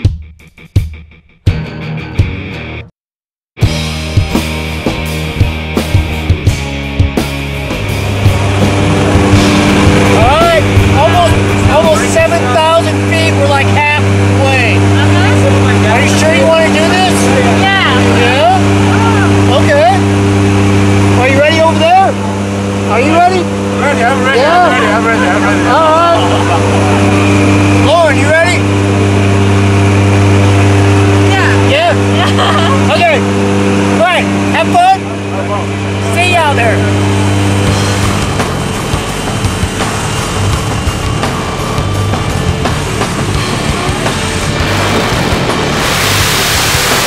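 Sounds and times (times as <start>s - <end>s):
plane engines and propellers droning: 4.4s - 47.0s
people shouting: 17.4s - 19.4s, 24.3s - 27.1s
people laughing: 24.4s - 27.5s, 32.1s - 33.1s.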